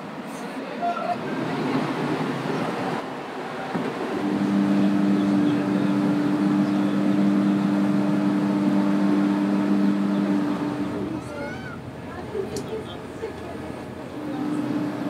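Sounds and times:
wind and water rushing: 0.0s - 5.0s
ship horn low blast: 3.6s - 11.9s, 12.8s - 15.0s.

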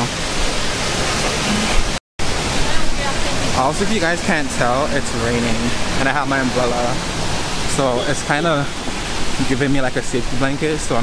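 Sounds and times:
rain hissing: 0.0s - 11.0s
wet street noise: 0.0s - 11.0s.

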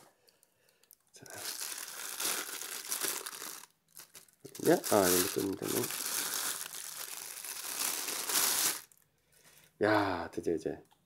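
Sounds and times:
bubble wrap crinkling: 0.0s - 9.1s.

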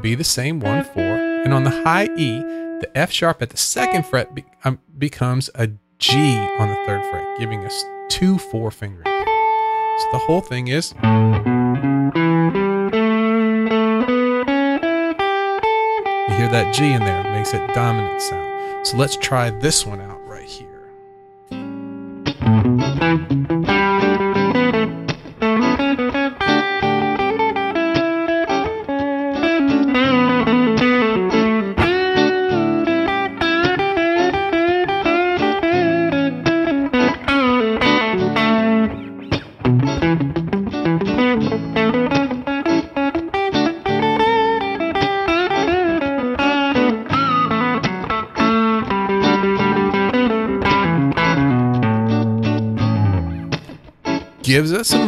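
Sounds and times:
electric guitar single-note lines: 0.0s - 4.6s, 6.0s - 55.0s.

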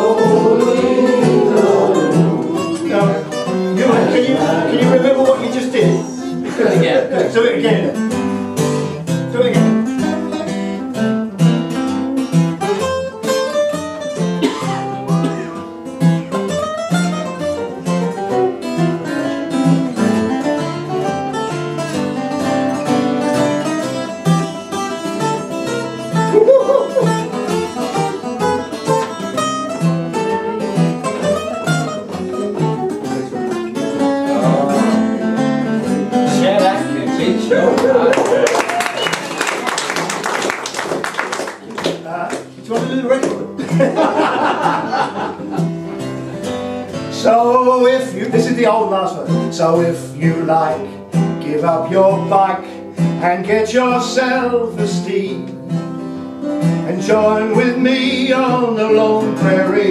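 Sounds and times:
acoustic guitars playing country music: 0.0s - 59.9s.

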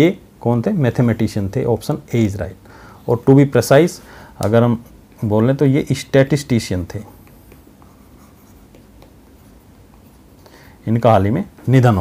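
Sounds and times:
low steady hiss: 0.0s - 12.0s
stylus scratching on pen tablet: 7.2s - 10.3s.

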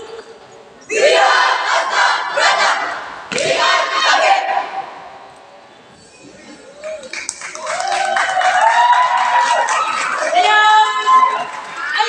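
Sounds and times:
group of voices shouting together: 0.9s - 4.9s.

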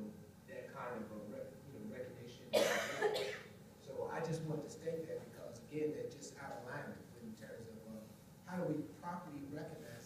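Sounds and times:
person coughing: 2.5s - 3.5s.

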